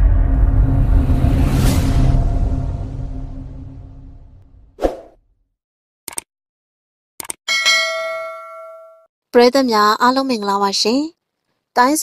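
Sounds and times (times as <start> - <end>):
notification bell chime: 7.5 - 9.0.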